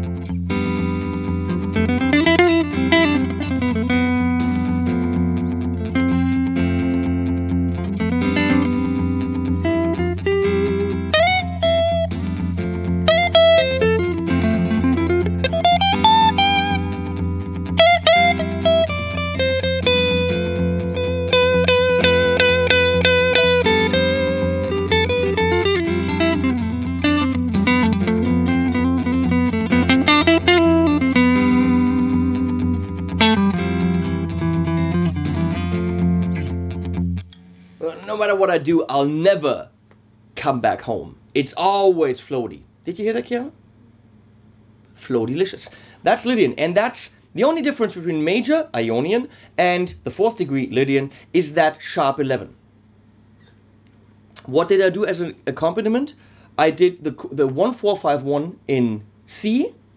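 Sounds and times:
low bass pedal tone: 0:00.0 - 0:37.5
electric guitar lead with bends: 0:00.0 - 0:37.8.

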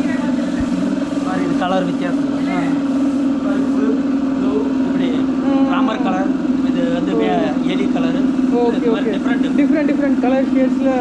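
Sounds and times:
people talking: 0:00.0 - 0:11.0
steady low hum: 0:00.0 - 0:11.0.

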